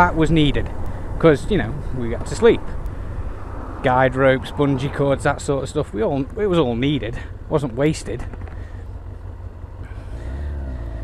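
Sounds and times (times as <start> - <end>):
motorcycle engine accelerating: 8.2 - 11.0.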